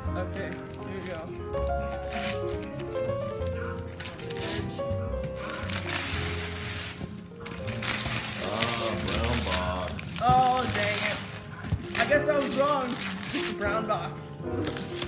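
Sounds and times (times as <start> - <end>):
background music with held notes: 0.0 - 15.0
wrapping paper tearing: 0.0 - 15.0.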